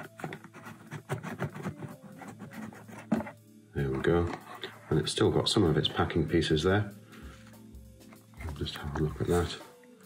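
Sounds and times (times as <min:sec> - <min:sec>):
cardboard scraping and rubbing: 0:00.0 - 0:03.4.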